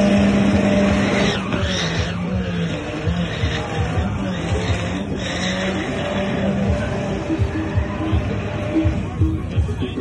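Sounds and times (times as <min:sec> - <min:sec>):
car engine revving: 0:00.0 - 0:10.0
music beat: 0:00.0 - 0:10.0.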